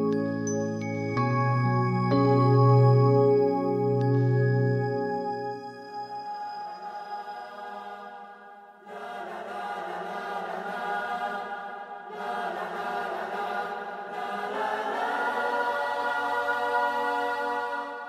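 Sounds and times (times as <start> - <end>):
soft musical backing: 0.0 - 7.7
slow choir-like vocal music: 0.0 - 18.0.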